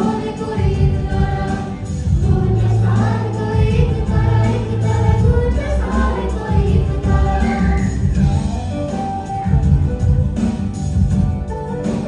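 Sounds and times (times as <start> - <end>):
female voices singing together: 0.0 - 8.1
musical accompaniment with bass: 0.0 - 12.0.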